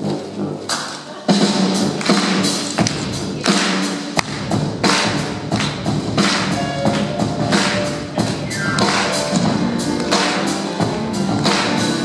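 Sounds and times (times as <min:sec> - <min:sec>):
sharp drum hits: 0:07.6 - 0:11.9
sousaphone bass line: 0:08.3 - 0:09.6.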